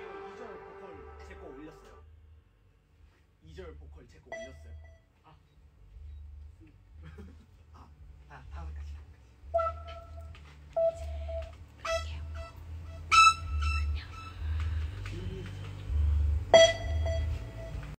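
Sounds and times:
low steady hum: 0.0s - 18.0s
short pitched beeps: 4.3s - 5.0s, 10.8s - 11.5s, 16.6s - 17.8s.

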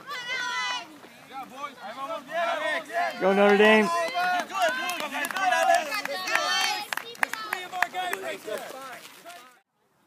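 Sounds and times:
spectators talking and calling out: 0.0s - 9.0s.

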